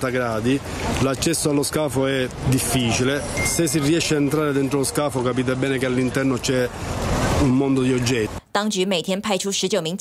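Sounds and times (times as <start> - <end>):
man speaking: 0.0 - 6.7, 7.4 - 8.4
rush of background noise: 0.0 - 8.5.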